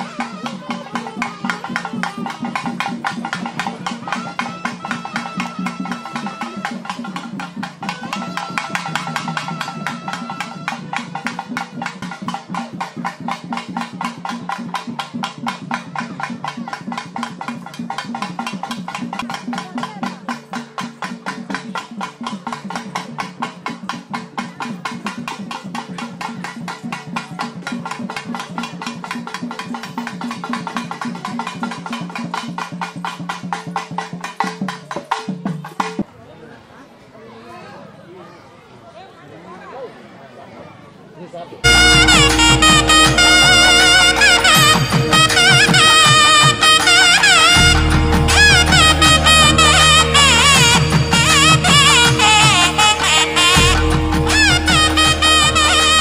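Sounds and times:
music with fast drumming: 0:00.0 - 0:36.1, 0:41.6 - 0:56.0
short high tone: 0:41.6 - 0:56.0.

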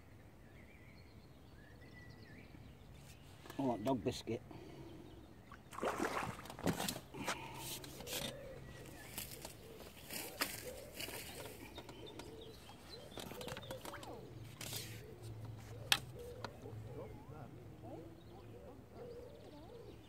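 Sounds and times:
fish splashing at surface: 0:05.6 - 0:07.0.

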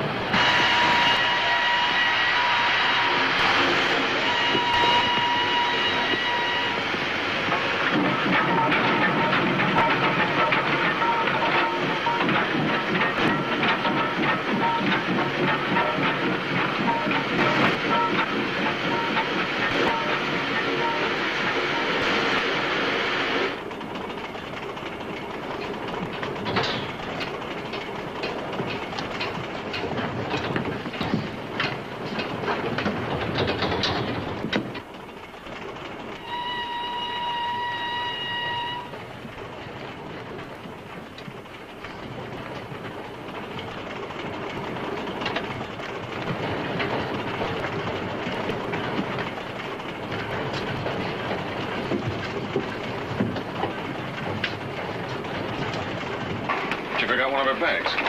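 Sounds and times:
steam train rumbling: 0:00.0 - 0:58.0
train whistle: 0:00.3 - 0:07.0, 0:13.3 - 0:22.4, 0:36.2 - 0:39.0
wheels clicking over rail joints: 0:03.4 - 0:22.7, 0:23.5 - 0:58.0.

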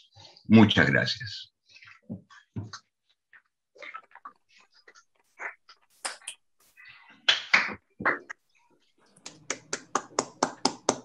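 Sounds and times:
person clapping: 0:07.3 - 0:07.8, 0:09.2 - 0:11.0.

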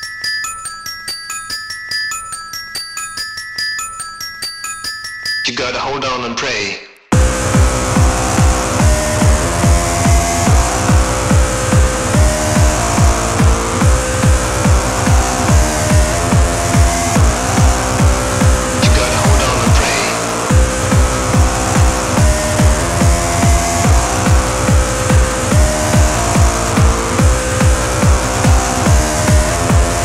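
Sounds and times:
four-on-the-floor kick drum: 0:07.1 - 0:30.0
hard trance dance music: 0:07.1 - 0:30.0
held synth notes: 0:07.2 - 0:30.0.

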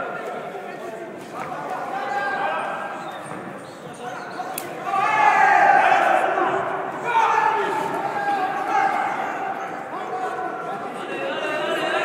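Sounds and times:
loud shouting voices: 0:04.1 - 0:12.0.

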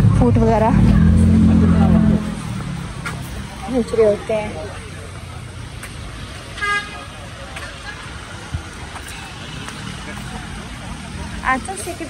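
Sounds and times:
low engine hum: 0:00.0 - 0:05.1
street traffic noise: 0:00.0 - 0:12.0.

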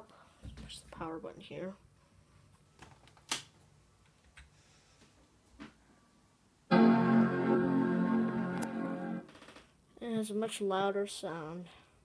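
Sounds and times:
computer startup chime: 0:06.7 - 0:09.2.

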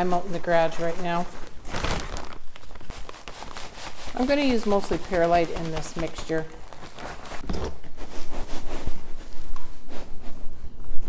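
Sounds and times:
plastic bags crinkling: 0:00.0 - 0:07.4.

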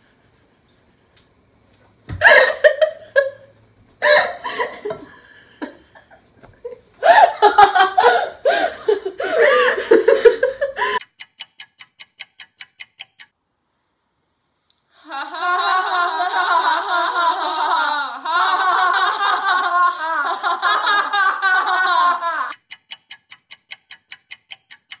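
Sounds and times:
clock ticking: 0:10.3 - 0:13.3, 0:22.5 - 0:25.0.

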